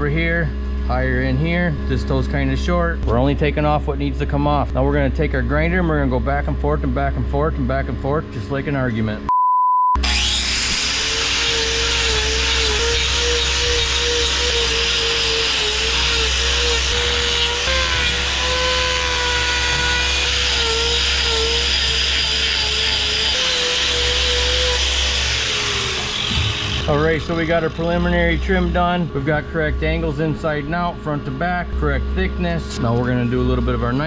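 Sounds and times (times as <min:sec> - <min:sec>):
angle grinder grinding hoof: 0:10.0 - 0:34.0.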